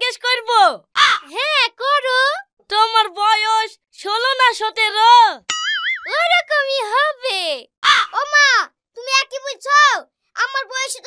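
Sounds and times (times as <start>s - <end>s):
high-pitched sing-song dialogue: 0.0s - 11.0s.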